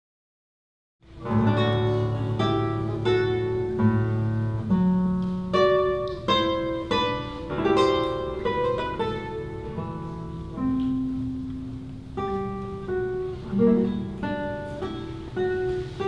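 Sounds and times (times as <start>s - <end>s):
classical guitar plucked notes: 1.0s - 16.0s.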